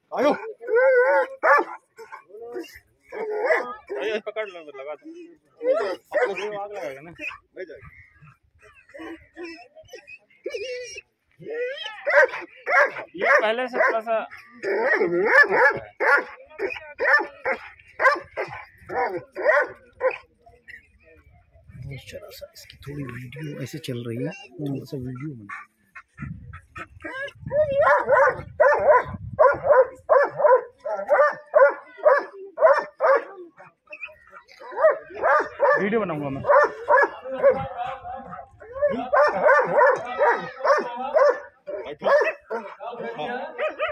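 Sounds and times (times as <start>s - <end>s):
dog barking: 1.2s - 2.2s, 3.2s - 4.2s, 5.7s - 6.5s, 12.1s - 14.1s, 14.7s - 20.3s, 27.1s - 33.7s, 34.3s - 37.7s, 38.8s - 42.8s, 43.6s - 43.9s.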